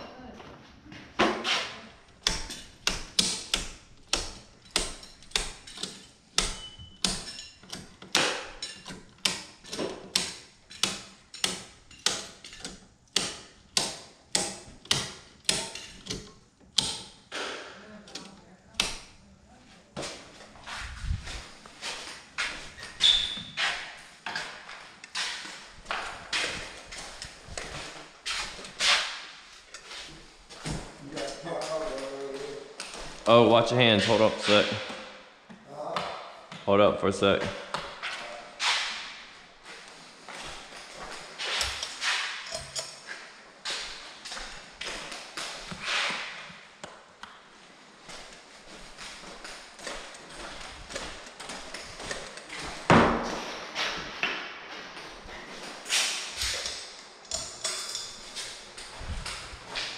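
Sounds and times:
circuit breakers snapping: 2.0 - 19.3.

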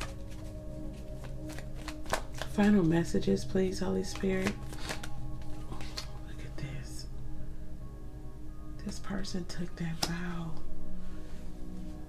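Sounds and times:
cards being shuffled: 0.0 - 3.1, 4.0 - 6.2
soft background music: 0.0 - 12.0.

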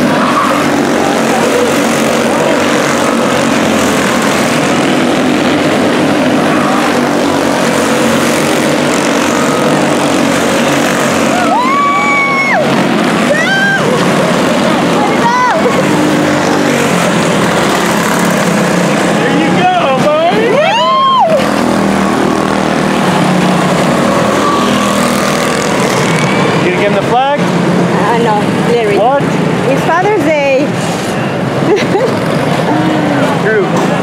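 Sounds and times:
race car engines passing: 0.0 - 34.0.

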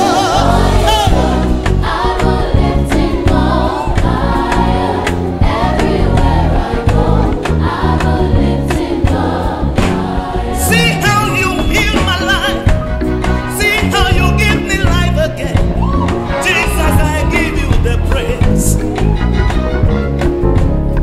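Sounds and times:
backing choir singing: 0.0 - 13.5
lead singer: 0.0 - 19.2
band with steady drum beat: 0.8 - 21.0.

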